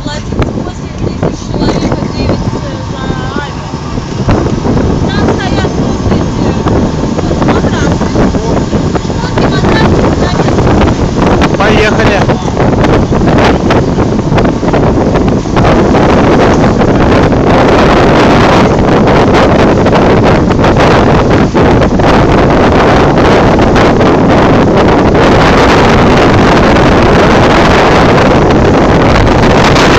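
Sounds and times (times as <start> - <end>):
strong wind buffeting microphone: 0.0 - 29.9.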